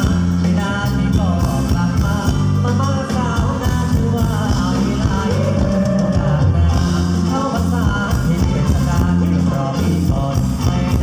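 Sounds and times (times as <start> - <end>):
live band playing: 0.0 - 11.0
person singing: 0.0 - 11.0.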